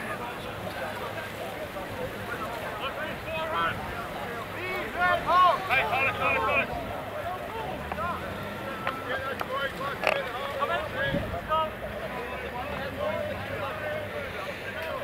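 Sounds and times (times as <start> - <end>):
players shouting calls: 2.8 - 15.0
wind rumbling on microphone: 10.8 - 11.5.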